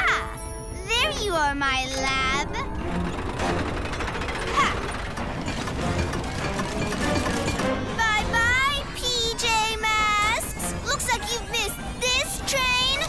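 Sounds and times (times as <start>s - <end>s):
mechanical clattering: 1.0s - 13.0s
action music: 2.6s - 13.0s.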